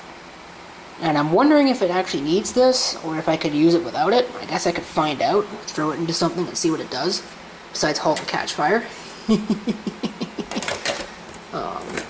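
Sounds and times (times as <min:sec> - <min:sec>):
man laughing: 0:09.0 - 0:10.9.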